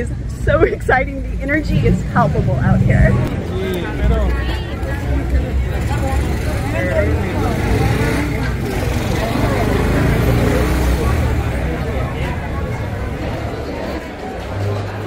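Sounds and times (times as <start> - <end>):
people chattering: 0.0 - 15.0
street traffic rumble: 0.0 - 15.0.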